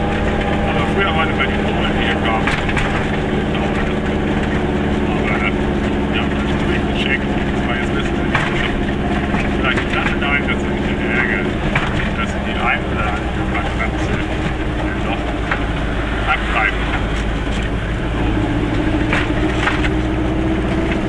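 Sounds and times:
small two-stroke engine running: 0.0s - 21.0s.

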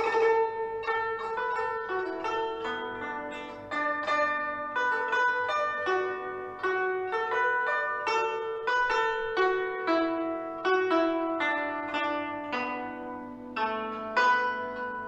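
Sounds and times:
plucked zither melody: 0.0s - 15.0s.

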